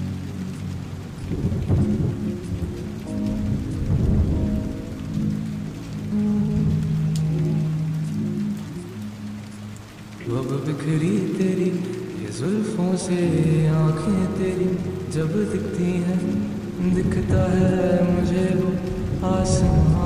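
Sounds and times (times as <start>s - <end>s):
lofi instrumental chords: 0.0s - 10.3s
steady rain: 0.0s - 20.0s
thunder rumbling: 0.0s - 20.0s.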